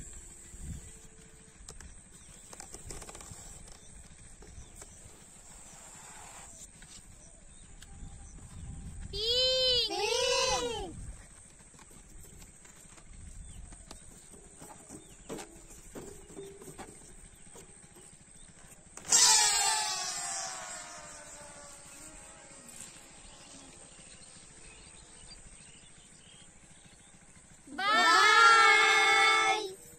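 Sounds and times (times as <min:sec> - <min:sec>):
balloons squealing: 0:19.0 - 0:21.6.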